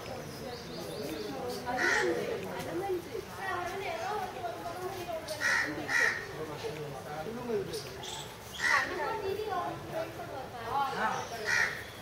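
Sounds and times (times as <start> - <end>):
murmur of voices: 0.0 - 12.0
crow cawing: 1.8 - 2.2, 5.4 - 6.3, 8.6 - 8.9, 11.4 - 11.9.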